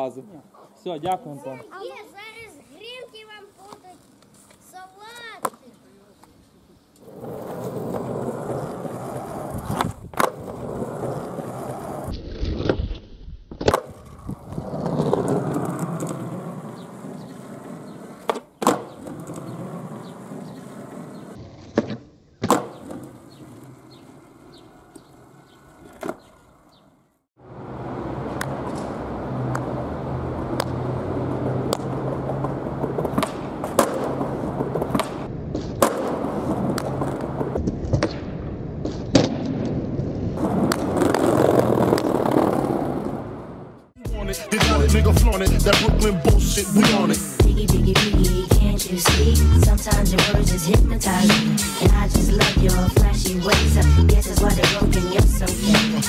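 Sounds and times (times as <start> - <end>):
skateboard wheels rolling: 1.5 - 45.1
skateboard clacking on ground: 5.1 - 6.4, 31.6 - 38.2.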